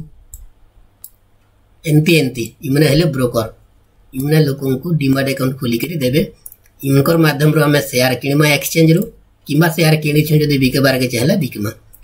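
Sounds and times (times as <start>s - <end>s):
person speaking: 1.8s - 12.0s
computer mouse clicks: 6.4s - 6.8s.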